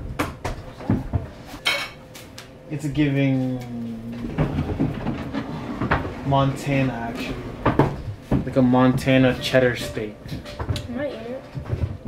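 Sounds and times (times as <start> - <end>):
chair scraping across floor: 3.3 - 12.0.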